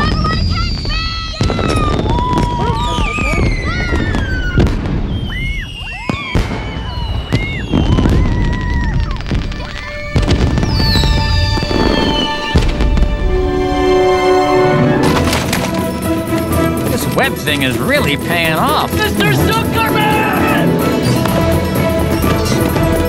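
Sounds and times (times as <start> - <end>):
whistling rockets: 0.0 - 13.2
fireworks shells banging: 15.0 - 17.8.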